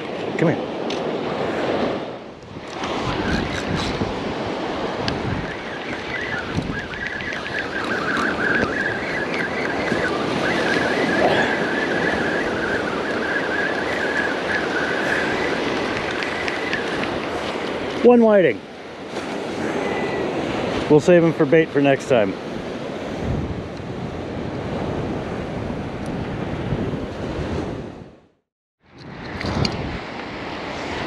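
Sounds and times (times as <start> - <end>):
wind buffeting microphone: 0.0 - 21.4, 22.2 - 28.3, 28.9 - 31.0
surf washing up beach: 0.0 - 28.1, 29.1 - 31.0.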